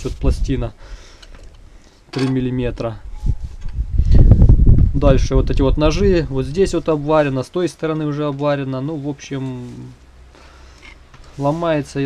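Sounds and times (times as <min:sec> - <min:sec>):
wind buffeting microphone: 0:03.0 - 0:07.0.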